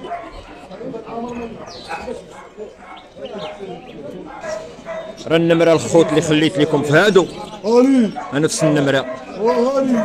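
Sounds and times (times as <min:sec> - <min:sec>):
dogs barking and yipping: 0:00.0 - 0:10.0
people chatting: 0:00.0 - 0:10.0.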